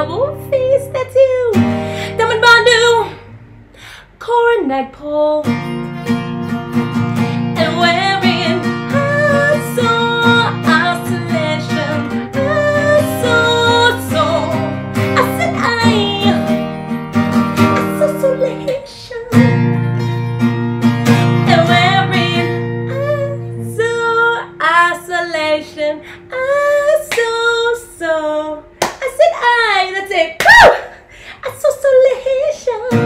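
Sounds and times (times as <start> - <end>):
woman singing: 0.0 - 3.3, 4.0 - 5.8, 7.2 - 19.9, 21.0 - 33.0
acoustic guitar strumming: 0.0 - 3.5, 5.4 - 27.8.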